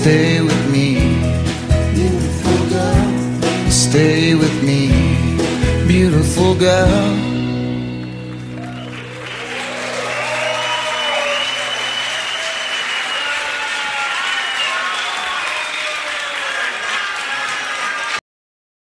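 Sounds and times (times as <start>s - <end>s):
audience applauding and cheering: 7.4s - 18.2s.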